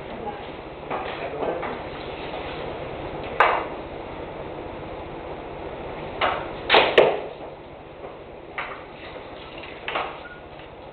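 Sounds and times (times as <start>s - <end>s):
ball striking goalie pads: 6.2s - 7.3s
hockey stick striking ball: 6.2s - 7.3s.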